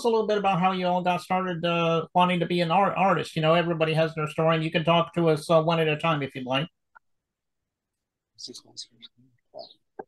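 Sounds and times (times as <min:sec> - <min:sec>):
man speaking over video call: 0:00.0 - 0:06.8, 0:08.4 - 0:09.2.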